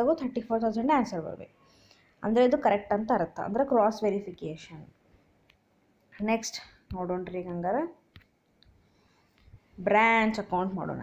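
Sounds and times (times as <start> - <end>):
person talking: 0.0 - 1.5, 2.2 - 5.0, 6.2 - 8.1, 9.8 - 11.0.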